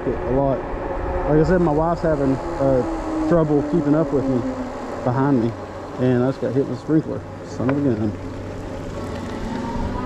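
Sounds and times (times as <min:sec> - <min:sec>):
electric motor whine: 0:00.0 - 0:10.0
faint rising whine: 0:00.0 - 0:10.0
tyres rumbling: 0:00.0 - 0:10.0.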